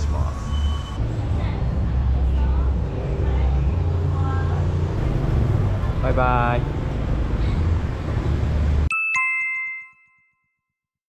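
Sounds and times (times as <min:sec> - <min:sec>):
street traffic rumble: 0:00.0 - 0:08.9.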